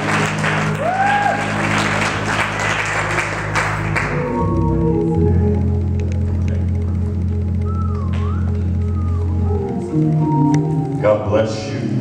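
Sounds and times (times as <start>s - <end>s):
organ chord: 0.0s - 12.0s.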